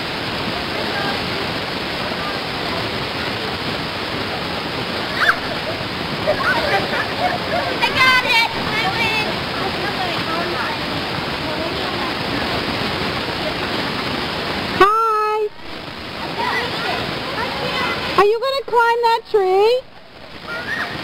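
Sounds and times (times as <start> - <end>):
steady rushing noise: 0.0 - 21.0
faint children's voices: 0.4 - 14.0, 16.1 - 18.2, 20.4 - 21.0
child shouting: 7.6 - 9.3, 20.5 - 21.0.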